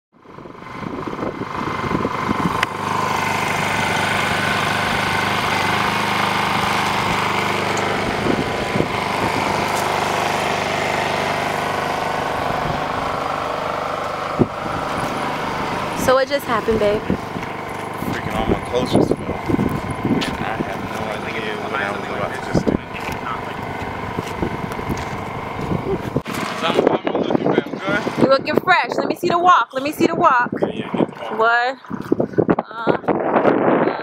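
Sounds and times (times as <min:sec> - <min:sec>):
motor running steadily: 0:00.2 - 0:34.0.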